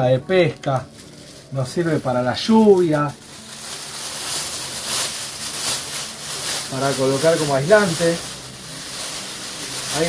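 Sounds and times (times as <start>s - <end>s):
foil blanket crinkling: 0.3s - 10.0s.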